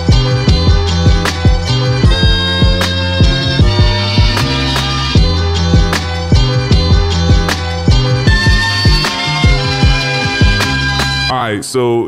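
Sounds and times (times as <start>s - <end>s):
deep kick drums: 0.0s - 4.6s, 5.2s - 10.6s.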